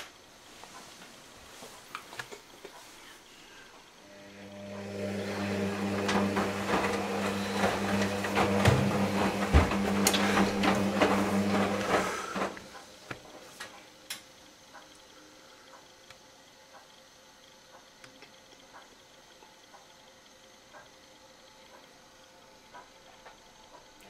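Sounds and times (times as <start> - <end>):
washing machine motor hum: 3.8 - 24.0.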